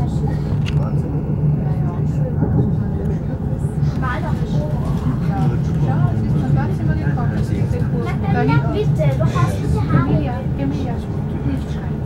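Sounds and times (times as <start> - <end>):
passengers talking: 0.0 - 12.0
train rumbling: 0.0 - 12.0.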